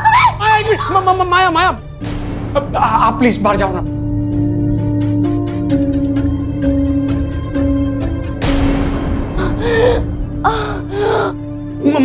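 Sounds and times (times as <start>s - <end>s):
dramatic background music: 0.0s - 12.0s
woman crying: 9.4s - 11.4s
woman gasping and whimpering: 9.4s - 11.4s.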